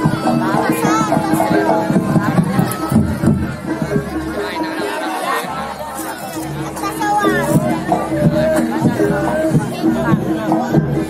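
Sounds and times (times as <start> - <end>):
crowd chatter: 0.0 - 11.0
gamelan music: 0.0 - 11.0.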